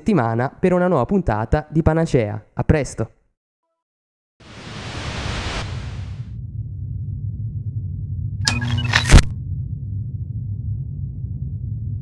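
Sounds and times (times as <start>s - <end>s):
low rumbling drone: 6.2s - 12.0s.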